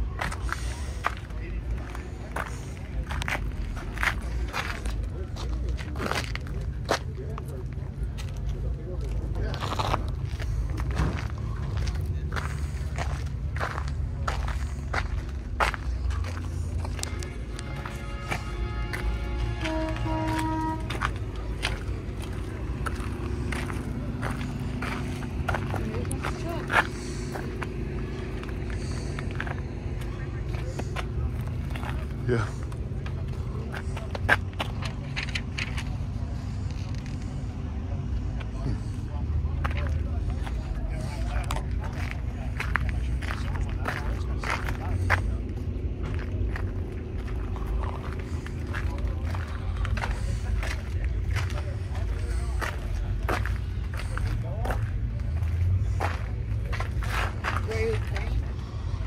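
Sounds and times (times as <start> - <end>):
distant talk: 0.0 - 59.0
footsteps: 0.0 - 59.0
low rumble: 0.0 - 59.0.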